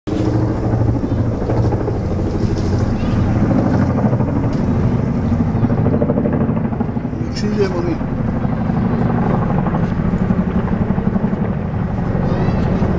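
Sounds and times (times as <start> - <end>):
helicopter rotors beating: 0.1 - 12.9.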